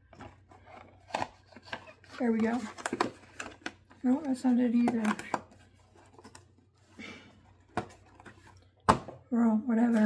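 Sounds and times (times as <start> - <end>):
packaging rustle: 0.1 - 8.6.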